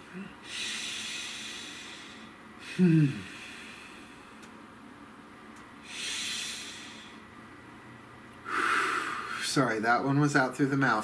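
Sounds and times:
man taking deep breath: 0.4 - 4.5, 5.8 - 7.2, 8.5 - 9.4.

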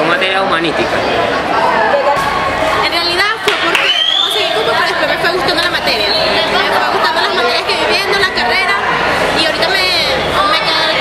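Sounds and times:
chatter of students: 0.0 - 11.0.

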